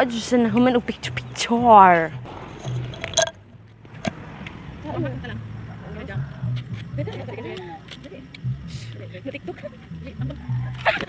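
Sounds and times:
woman's voice: 0:00.0 - 0:02.2, 0:07.0 - 0:11.0
quiet outdoor background: 0:00.0 - 0:11.0.

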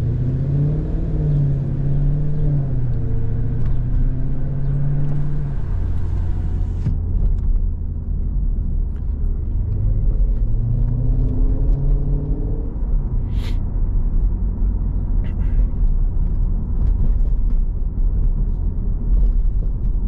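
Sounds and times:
car engine accelerating: 0:00.0 - 0:17.4.

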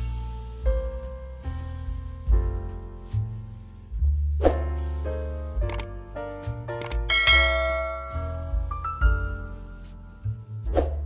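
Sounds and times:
background music: 0:00.0 - 0:11.0
mouse click: 0:05.7 - 0:05.9, 0:06.8 - 0:07.0
bright bell chime: 0:07.1 - 0:09.4.

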